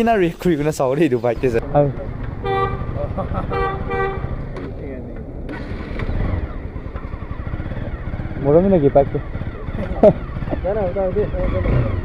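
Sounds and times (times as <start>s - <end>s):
motorcycle engine idling: 1.7s - 12.0s.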